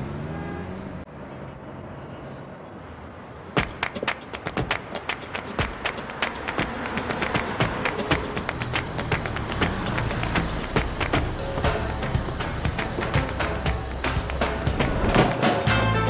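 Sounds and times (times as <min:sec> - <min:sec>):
low bass notes: 0:00.0 - 0:00.7
music with ticking percussive beat: 0:03.6 - 0:16.0.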